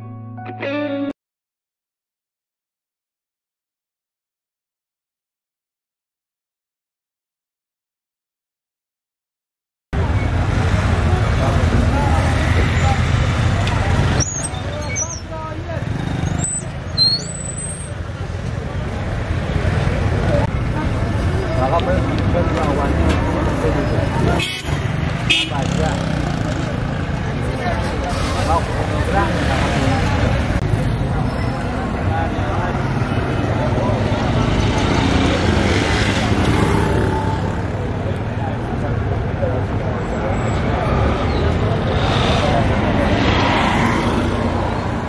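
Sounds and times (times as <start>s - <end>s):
motor traffic: 10.0s - 45.0s
passers-by talking: 10.0s - 45.0s.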